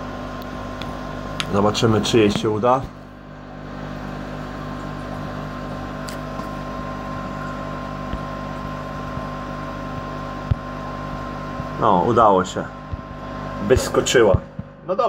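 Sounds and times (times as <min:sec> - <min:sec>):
cooling fans humming: 0:00.0 - 0:15.0.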